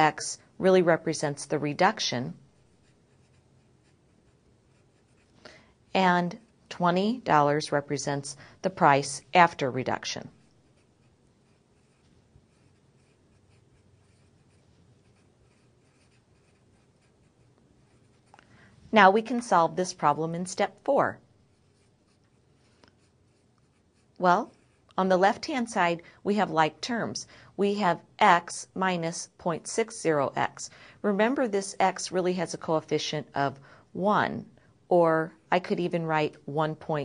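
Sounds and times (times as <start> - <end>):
marker writing on paper: 2.6 - 5.4, 10.3 - 18.4, 21.4 - 25.1.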